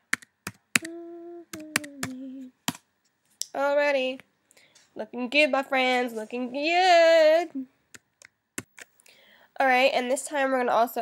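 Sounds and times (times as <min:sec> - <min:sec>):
computer keyboard keys tapping: 0:00.0 - 0:02.8
person humming: 0:00.8 - 0:02.6.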